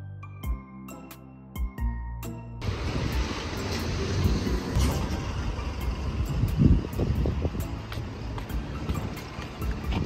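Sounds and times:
low rumbling: 0:02.6 - 0:10.0.

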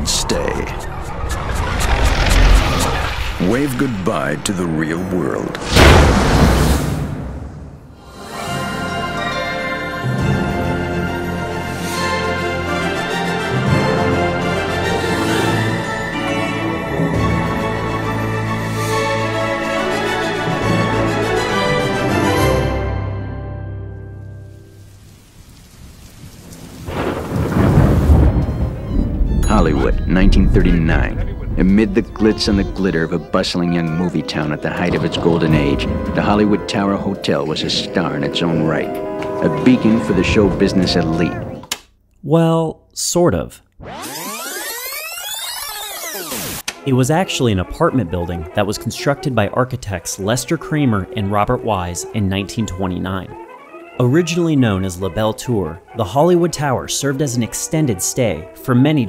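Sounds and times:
low rumble: 0:00.0 - 0:07.9, 0:27.0 - 0:33.2
eerie background music: 0:08.0 - 0:24.8, 0:27.1 - 0:41.7
rain hiss: 0:24.2 - 0:28.8.

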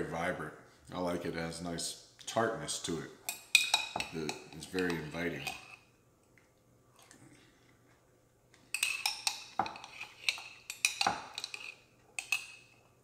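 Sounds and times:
metal spoon clinking glass jar: 0:03.3 - 0:05.8, 0:08.7 - 0:12.8.

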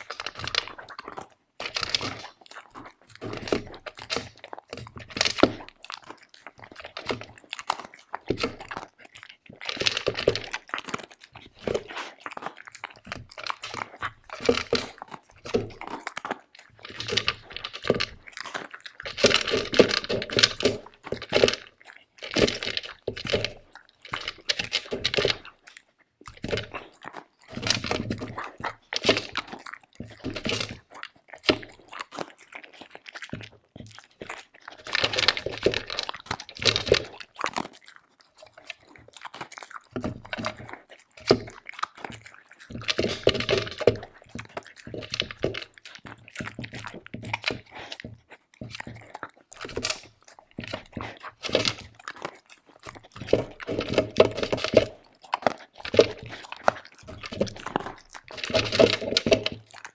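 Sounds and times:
dog crunching dry kibble: 0:00.0 - 0:59.9.

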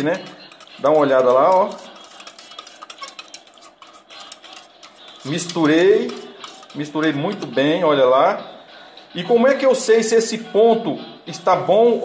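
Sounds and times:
utensil stirring in plastic cup: 0:00.0 - 0:08.0.

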